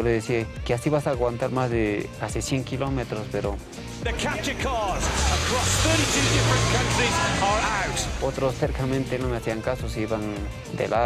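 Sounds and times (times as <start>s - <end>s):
car engines humming: 3.8s - 9.7s
hubbub of voices: 4.1s - 8.4s.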